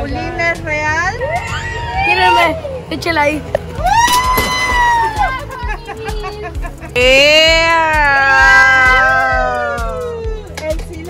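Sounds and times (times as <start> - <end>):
background music: 0.0 - 11.0
high-pitched cry: 7.0 - 10.2.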